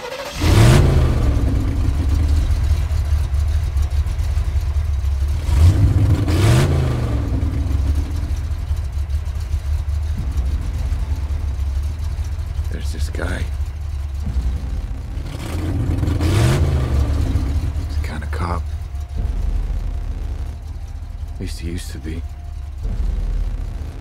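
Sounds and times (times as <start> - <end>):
car engine revving and idling: 0.0 - 24.0.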